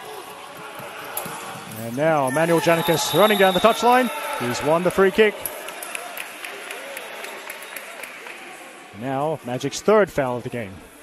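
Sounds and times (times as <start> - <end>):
echoing din of players and spectators: 0.0 - 11.0.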